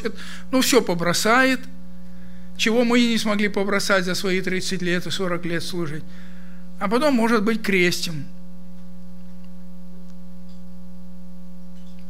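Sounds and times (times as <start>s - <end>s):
electrical hum: 0.0s - 12.0s.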